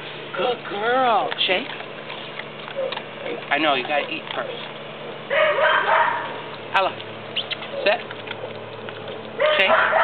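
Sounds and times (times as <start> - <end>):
dog barking harshly: 5.3 - 6.4, 9.4 - 10.0.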